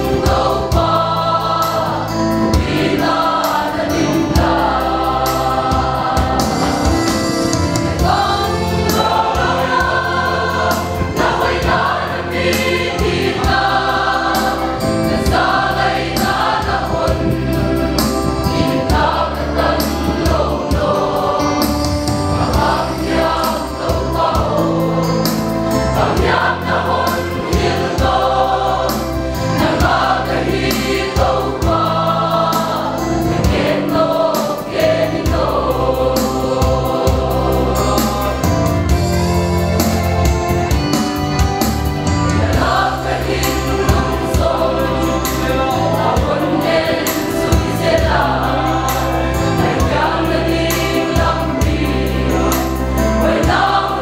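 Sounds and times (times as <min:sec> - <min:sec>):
choir singing a hymn: 0:00.0 - 0:54.0.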